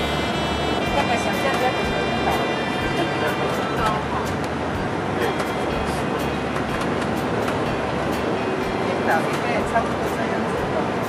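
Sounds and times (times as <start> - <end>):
coach engine and road noise: 0.0 - 11.0.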